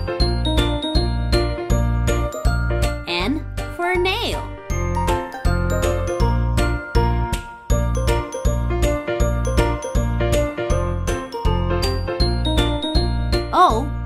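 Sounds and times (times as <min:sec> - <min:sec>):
cheerful children's music: 0:00.0 - 0:14.0
person saying a word: 0:13.5 - 0:14.0.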